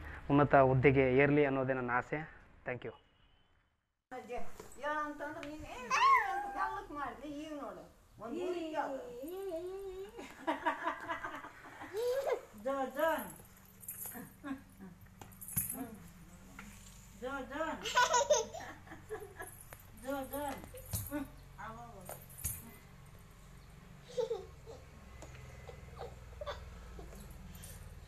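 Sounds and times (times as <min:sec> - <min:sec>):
small child laughing: 0:09.3 - 0:12.5, 0:17.8 - 0:19.5, 0:24.0 - 0:24.9, 0:25.6 - 0:27.3.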